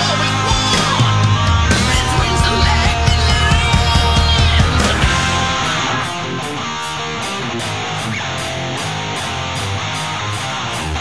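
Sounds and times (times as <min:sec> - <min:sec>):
rock song with guitar: 0:00.0 - 0:11.0.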